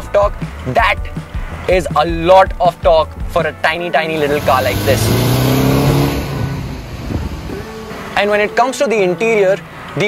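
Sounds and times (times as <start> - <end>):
low engine hum: 4.1 - 8.3.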